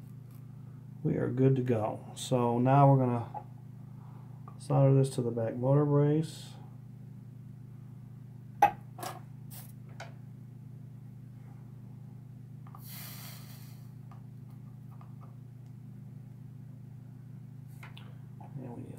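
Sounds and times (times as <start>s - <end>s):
steady low hum: 0.0s - 18.9s
soldering iron hiss: 12.8s - 14.0s.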